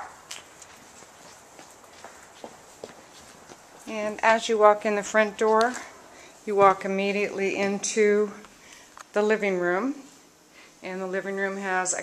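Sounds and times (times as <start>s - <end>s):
soft footsteps: 0.0s - 10.3s.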